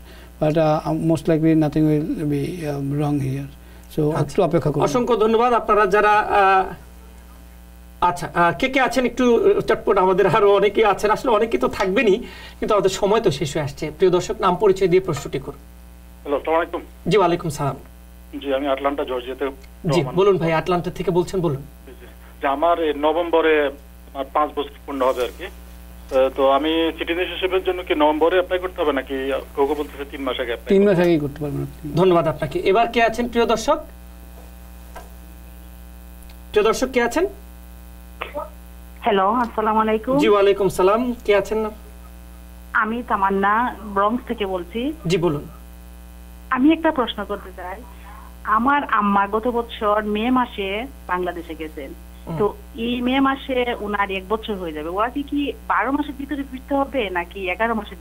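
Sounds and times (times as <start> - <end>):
low mains hum: 0.0 - 58.0
man speaking: 0.4 - 6.8, 16.2 - 33.9, 40.1 - 41.9, 45.0 - 45.6
person speaking on phone: 18.3 - 20.3, 38.2 - 38.6.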